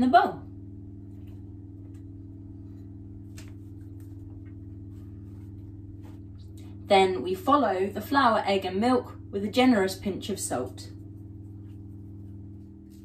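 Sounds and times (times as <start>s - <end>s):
low electrical hum: 0.0s - 13.0s.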